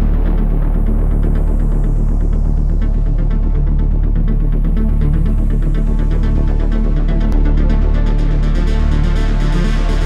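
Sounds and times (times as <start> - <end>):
heavy bass throb: 0.0 - 10.0.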